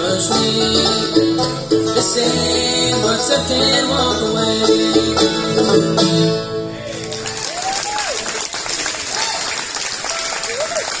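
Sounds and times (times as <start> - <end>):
bluegrass song: 0.0 - 7.7
audience applauding: 6.8 - 11.0.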